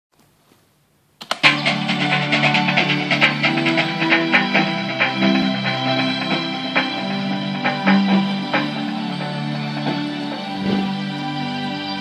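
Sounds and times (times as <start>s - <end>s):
synthesizer techno music: 1.3s - 12.0s.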